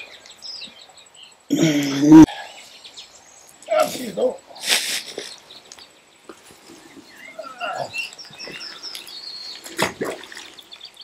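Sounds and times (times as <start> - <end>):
small birds chirping: 0.0 - 11.0
fish splashing in water: 9.0 - 11.0.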